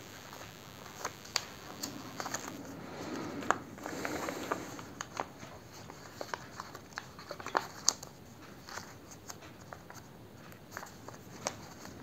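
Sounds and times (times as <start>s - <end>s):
paper rustling and crackling: 1.0s - 12.0s.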